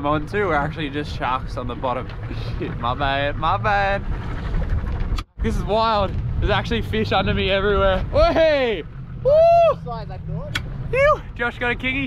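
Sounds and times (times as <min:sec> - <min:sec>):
outboard motor humming: 0:00.0 - 0:12.0
man whooping: 0:09.2 - 0:09.9, 0:10.9 - 0:11.3.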